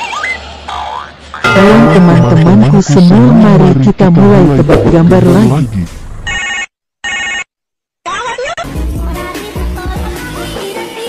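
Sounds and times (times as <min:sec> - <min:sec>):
telephone ring: 0:06.3 - 0:07.5.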